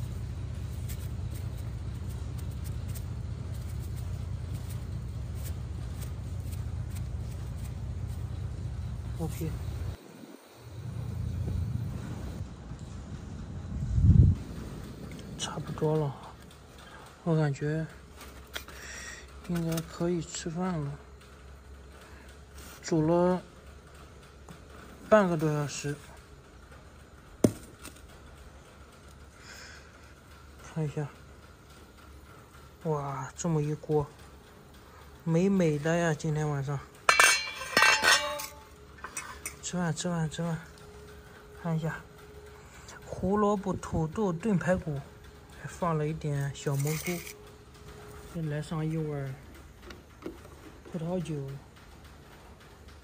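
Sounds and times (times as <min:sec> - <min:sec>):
road traffic rumble: 0:00.0 - 0:53.0
metal pot lid clanking on stone: 0:37.1 - 0:39.6.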